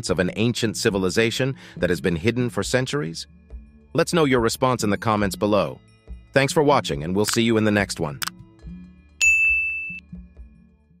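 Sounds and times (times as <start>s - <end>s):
quiet background music: 0.0s - 9.4s
electronic notification ding: 9.2s - 10.0s.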